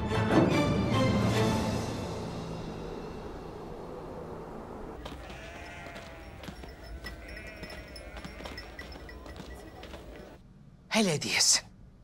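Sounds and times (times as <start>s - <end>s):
sheep and goats bleating: 5.0s - 10.3s.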